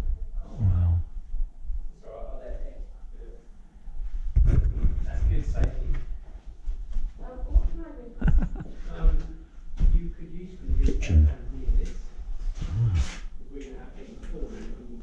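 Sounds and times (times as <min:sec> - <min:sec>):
low thumps and knocks: 0:04.3 - 0:06.0.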